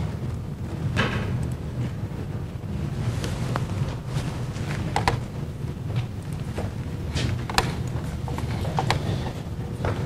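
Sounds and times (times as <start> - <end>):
low room rumble: 0.0 - 10.0
knocks and clicks of handling: 4.8 - 5.2, 5.9 - 9.2.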